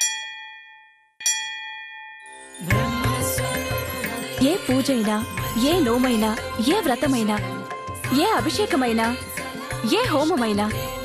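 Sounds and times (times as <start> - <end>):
metal bell ringing: 0.0 - 9.2.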